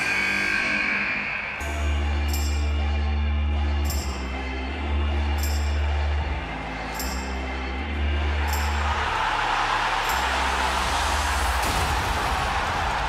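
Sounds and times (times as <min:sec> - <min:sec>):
arena crowd cheering: 0:00.0 - 0:13.0
low bass music: 0:01.6 - 0:13.0.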